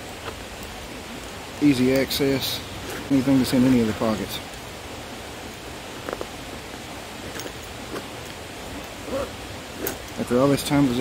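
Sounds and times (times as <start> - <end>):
background hiss: 0.0 - 11.0
zipper clicks and rustles: 7.2 - 8.1.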